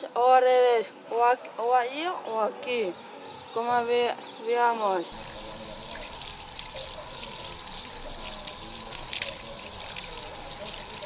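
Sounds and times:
water running from tap and splashing: 5.2s - 11.0s.

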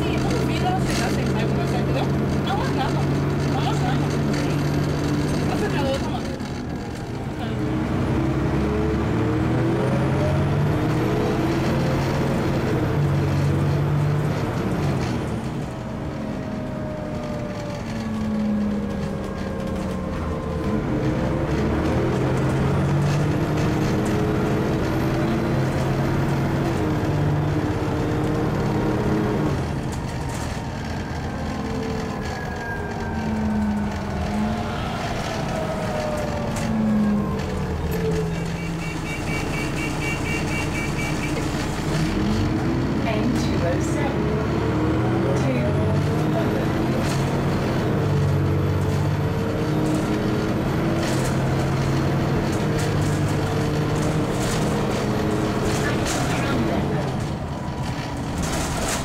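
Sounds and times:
bus engine revving: 0.0s - 59.0s.

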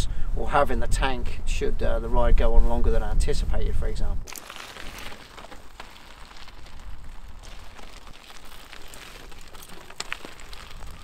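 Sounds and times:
tyres crunching on stones: 4.3s - 11.0s.

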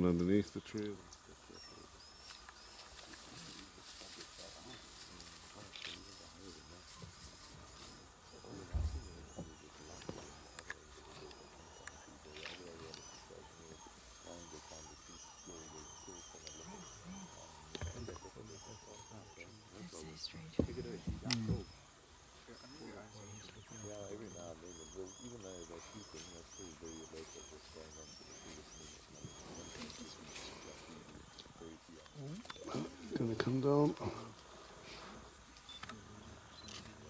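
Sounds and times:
high chirping calls: 0.0s - 34.4s
faint low sounds: 0.0s - 37.0s
soft thump: 8.6s - 9.5s, 20.6s - 21.7s.

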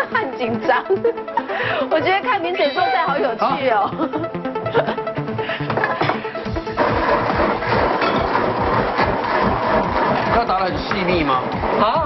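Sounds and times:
background music: 0.0s - 12.0s
blender running: 6.5s - 12.0s.

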